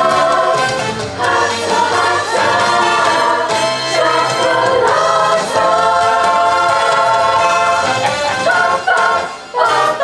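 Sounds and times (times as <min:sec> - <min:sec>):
girls' choir singing: 0:00.0 - 0:10.0.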